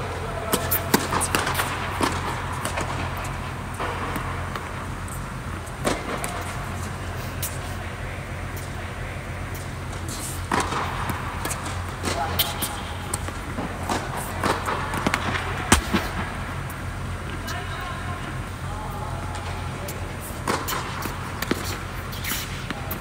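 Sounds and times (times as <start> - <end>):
tennis balls struck by racquets: 0.0 - 17.5, 19.4 - 23.0
steady low hum: 0.0 - 23.0.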